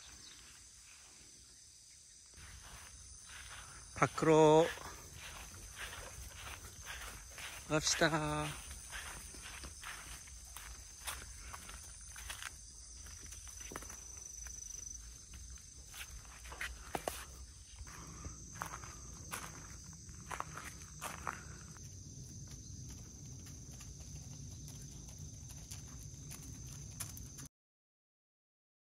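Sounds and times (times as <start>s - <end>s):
footsteps on leaves and gravel: 2.3s - 27.4s.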